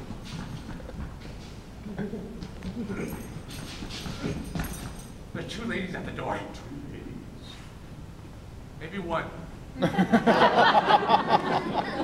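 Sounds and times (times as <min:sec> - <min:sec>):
footsteps on wooden stage floor: 0:00.0 - 0:05.2.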